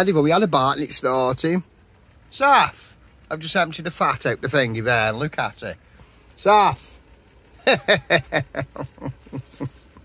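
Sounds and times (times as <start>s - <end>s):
man laughing: 7.5s - 10.0s.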